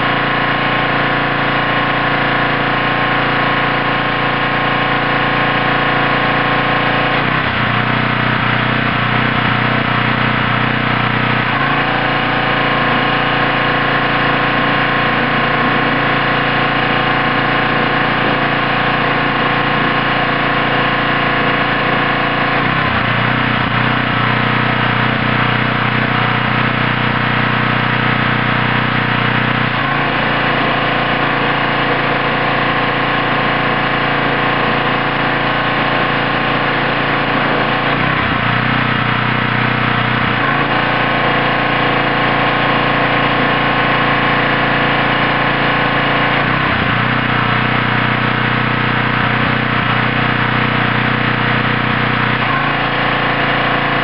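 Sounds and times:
pressure washer engine running: 0.0 - 54.0.

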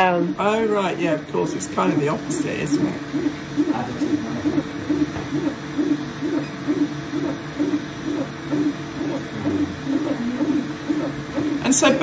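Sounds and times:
printer stepper motors whining: 0.0 - 12.0.

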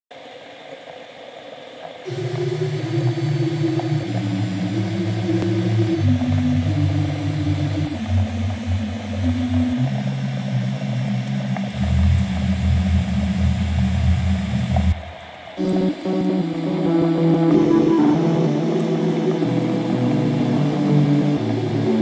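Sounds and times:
droning electronic music: 2.1 - 22.0.

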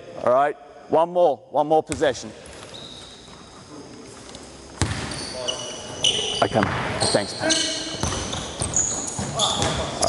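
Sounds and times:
sneakers squeaking: 1.9 - 10.0
basketball bouncing on gym floor: 4.8 - 5.2, 6.5 - 10.0.

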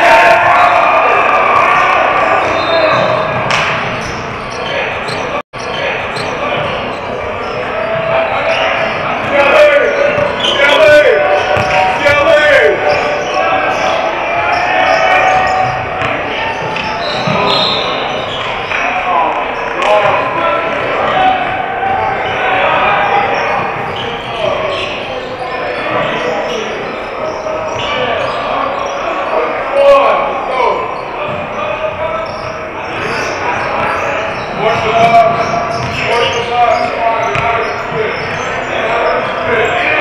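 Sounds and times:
players calling out: 0.0 - 40.0
sneakers squeaking: 0.0 - 40.0
basketball bouncing: 11.4 - 12.2, 34.7 - 36.4, 37.3 - 38.5.

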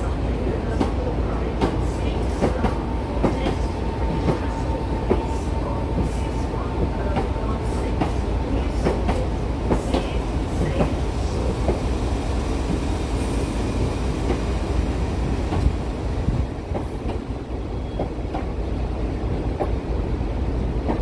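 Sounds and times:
train low rumble: 0.0 - 21.0.

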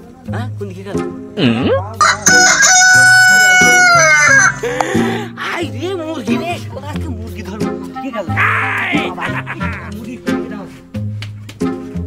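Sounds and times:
rooster crowing: 2.0 - 4.7.

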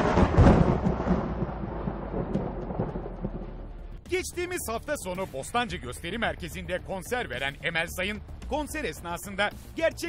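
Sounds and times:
loud boom with long rumble: 0.0 - 4.1.

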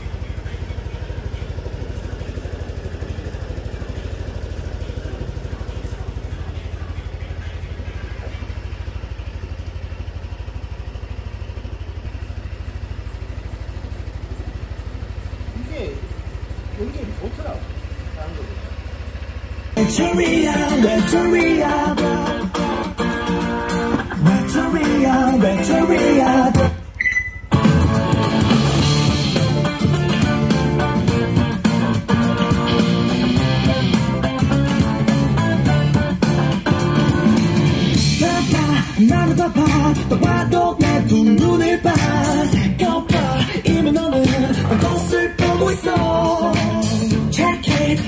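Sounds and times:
rock music through speaker: 0.0 - 9.9, 19.8 - 48.0
scooter engine idling: 0.0 - 48.0.

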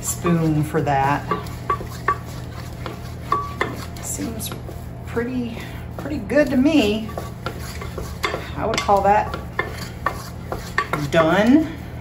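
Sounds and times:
wooden spoon stirring dough: 0.0 - 12.0.

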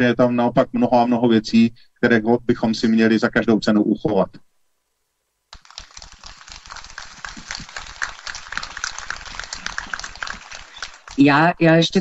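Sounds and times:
audience applauding: 5.5 - 11.5.

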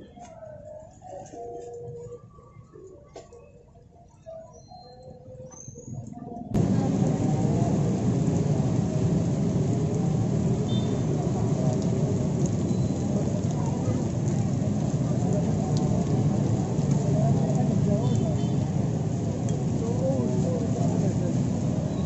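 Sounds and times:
hubbub of voices: 6.0 - 22.0
traffic: 6.6 - 22.0.

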